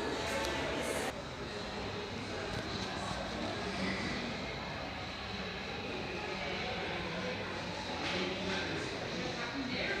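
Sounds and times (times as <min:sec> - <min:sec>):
faint indistinct voices: 0:00.0 - 0:10.0
steady background noise: 0:00.0 - 0:10.0.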